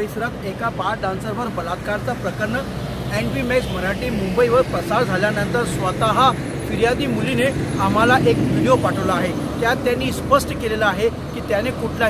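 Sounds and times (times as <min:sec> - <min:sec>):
man speaking: 0:00.0 - 0:12.0
road traffic: 0:00.0 - 0:12.0.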